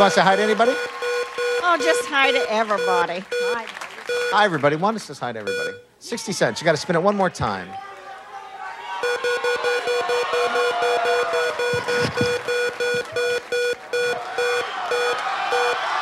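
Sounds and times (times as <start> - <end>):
short electronic beeps: 0.0 - 4.4, 5.5 - 5.9, 9.0 - 15.8.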